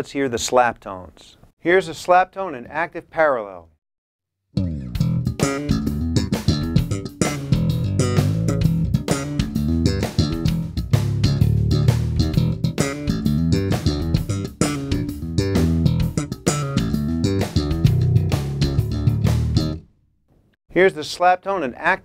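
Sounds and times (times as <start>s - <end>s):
slap bass playing: 4.6s - 19.9s.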